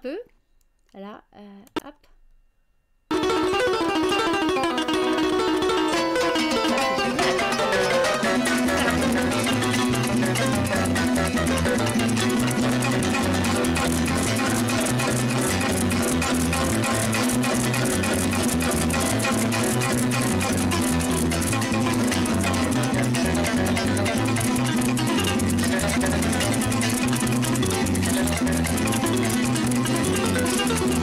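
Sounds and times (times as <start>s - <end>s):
folk harp music: 3.1s - 31.0s.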